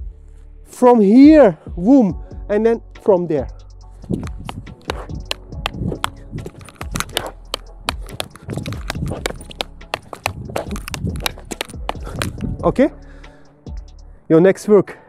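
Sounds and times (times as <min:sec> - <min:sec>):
background music: 0:00.0 - 0:15.0
wooden sticks clacking: 0:04.0 - 0:12.6.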